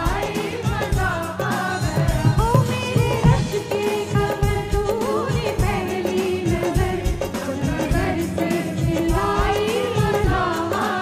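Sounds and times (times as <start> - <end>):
dholak drum beats: 0.0 - 11.0.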